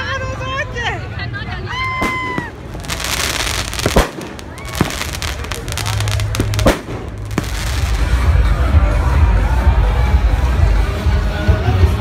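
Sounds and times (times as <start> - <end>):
fireworks crackling: 1.8 - 8.8
firework bangs: 2.0 - 8.4.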